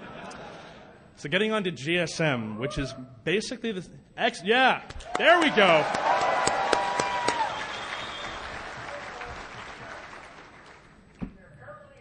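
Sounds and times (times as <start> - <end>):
audience applause: 5.0 - 11.0.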